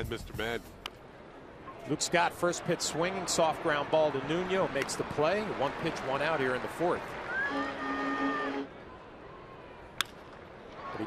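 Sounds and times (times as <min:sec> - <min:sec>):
crowd ambience: 0:00.0 - 0:11.0.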